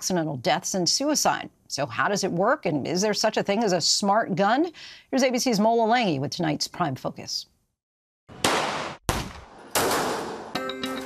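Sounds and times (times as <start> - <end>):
handgun shots: 8.4 - 10.5.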